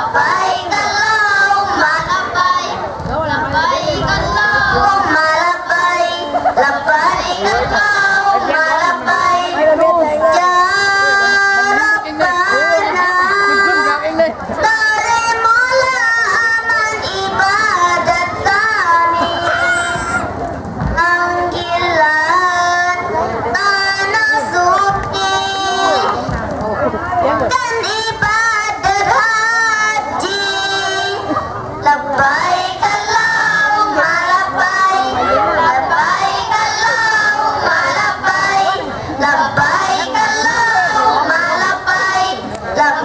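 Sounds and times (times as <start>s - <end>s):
children singing into a microphone: 0.0s - 26.5s, 27.2s - 43.0s.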